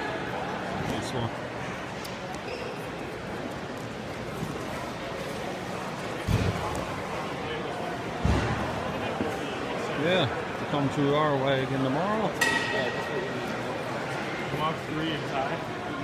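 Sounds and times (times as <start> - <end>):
chatter in a large hall: 0.0 - 16.0.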